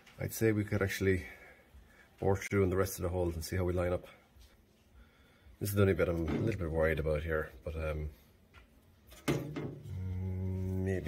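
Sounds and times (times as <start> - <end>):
man humming hmm: 9.9 - 11.0.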